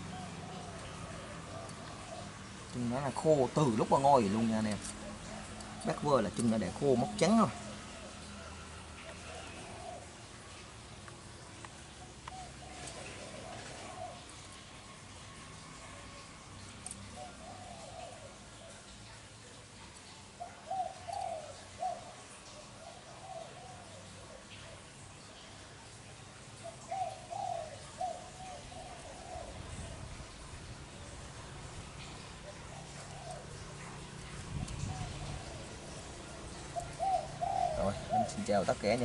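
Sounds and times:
dove cooing: 0:00.0 - 0:39.0.

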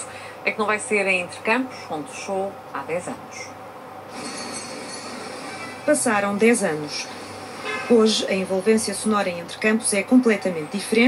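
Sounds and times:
rumbling noise from television: 0:00.0 - 0:11.0
speech from television: 0:05.6 - 0:11.0.

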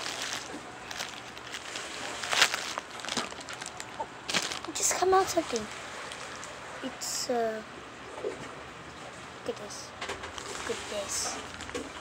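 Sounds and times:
package wrapping crinkling: 0:00.0 - 0:06.5, 0:10.3 - 0:12.0.

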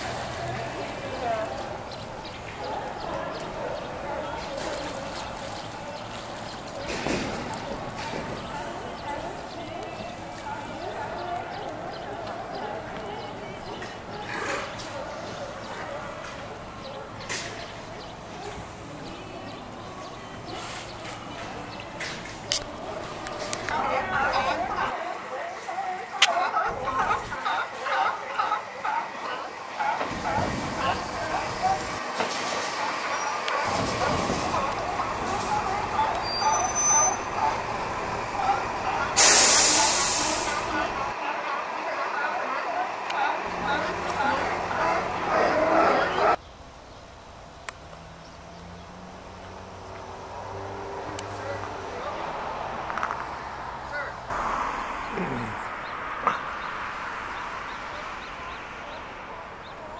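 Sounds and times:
chorus of sea lions barking: 0:00.0 - 0:17.2, 0:26.0 - 0:32.0, 0:32.8 - 0:39.2, 0:40.6 - 0:46.4
loud hiss: 0:39.2 - 0:40.8.

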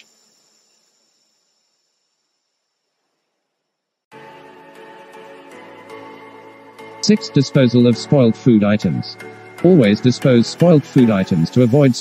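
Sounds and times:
faint high-pitched hiss: 0:00.0 - 0:04.0.

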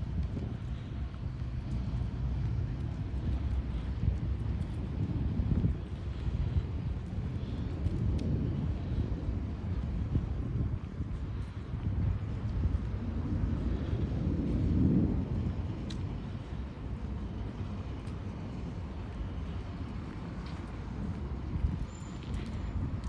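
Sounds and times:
low city rumble: 0:00.0 - 0:23.0
faint ticks: 0:15.8 - 0:16.6.

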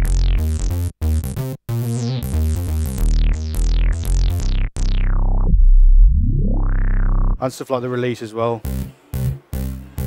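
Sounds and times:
synth bass notes with filter sweep: 0:00.0 - 0:07.5, 0:08.6 - 0:10.0.

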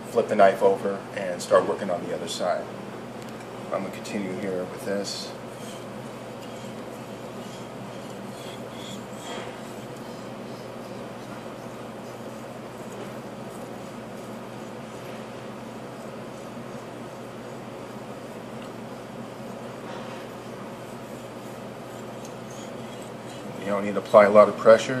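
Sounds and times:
mechanical hum: 0:00.0 - 0:25.0
knife scraping on whetstone: 0:05.3 - 0:17.6, 0:18.2 - 0:24.0.

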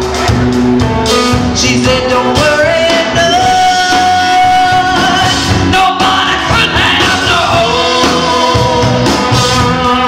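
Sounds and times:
live rock and roll band: 0:00.0 - 0:10.0.

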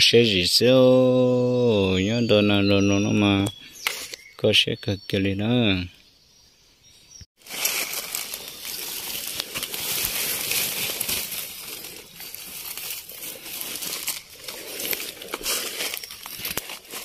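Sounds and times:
dry leaves rustling and crackling: 0:07.4 - 0:17.0.

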